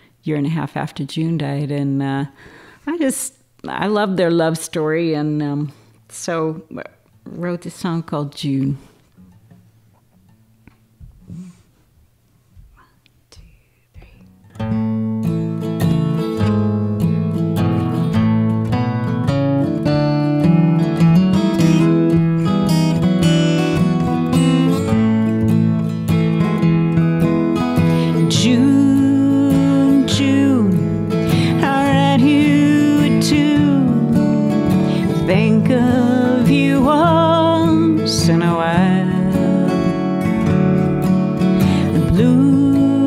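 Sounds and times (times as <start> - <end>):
acoustic guitars playing: 8.6 - 12.8, 13.4 - 43.0
woman singing: 27.9 - 40.6, 41.6 - 43.0.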